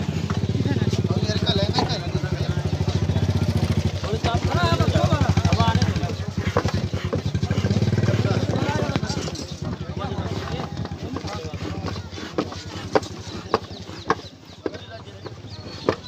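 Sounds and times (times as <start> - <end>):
crowd voices: 0.0 - 16.0.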